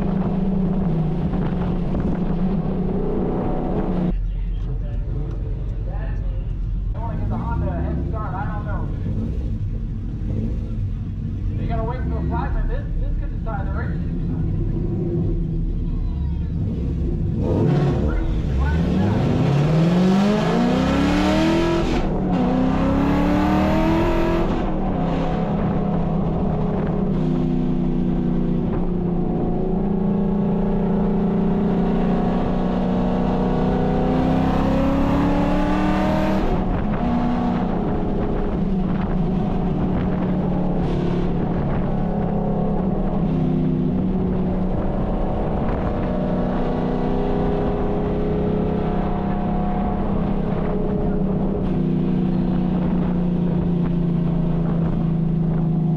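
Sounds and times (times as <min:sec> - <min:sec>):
car engine revving: 0:00.0 - 0:05.8, 0:06.4 - 0:55.9.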